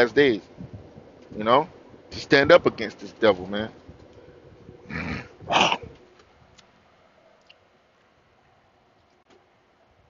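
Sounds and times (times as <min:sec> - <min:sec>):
man clearing his throat: 0:05.1 - 0:05.9.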